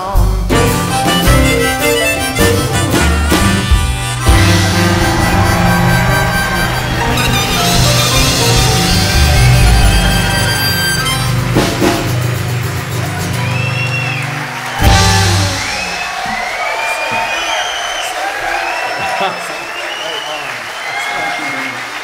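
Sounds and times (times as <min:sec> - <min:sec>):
harmonica: 0:00.0 - 0:12.3
acoustic guitar: 0:00.0 - 0:16.0
drums: 0:00.0 - 0:19.7
audience applause and cheering: 0:00.6 - 0:22.0.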